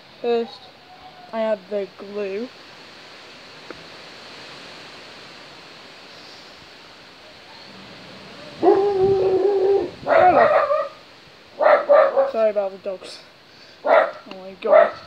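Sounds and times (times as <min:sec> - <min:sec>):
wind hiss on microphone: 0:00.0 - 0:15.0
dog whining and yelping: 0:08.6 - 0:11.0.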